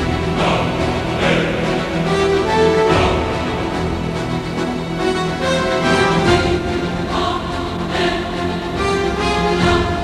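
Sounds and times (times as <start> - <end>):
choir singing sustained notes: 0.0 - 10.0.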